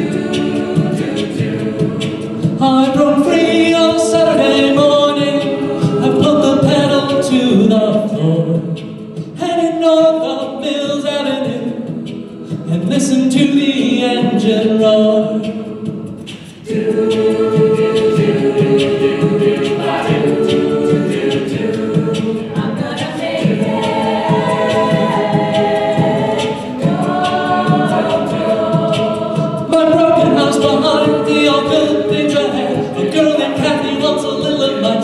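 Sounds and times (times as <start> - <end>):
a cappella group singing harmonies: 0.0 - 35.0
steady percussive beat: 0.0 - 35.0.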